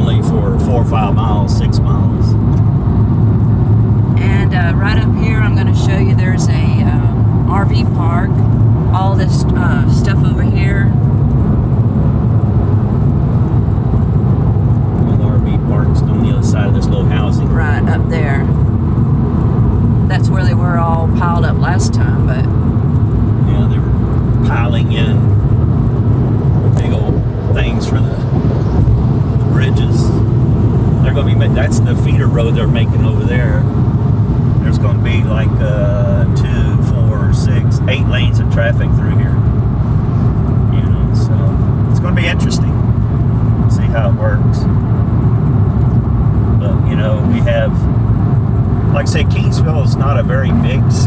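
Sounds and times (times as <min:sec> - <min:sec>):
people talking: 0:00.0 - 0:02.4, 0:04.2 - 0:08.4, 0:09.0 - 0:10.9, 0:15.0 - 0:18.5, 0:20.1 - 0:22.5, 0:23.4 - 0:25.2, 0:26.8 - 0:28.2, 0:29.4 - 0:30.2, 0:31.0 - 0:33.6, 0:34.6 - 0:39.4, 0:40.7 - 0:42.8, 0:43.7 - 0:44.6, 0:46.6 - 0:47.8, 0:48.9 - 0:51.0
car road and engine noise: 0:00.0 - 0:51.0.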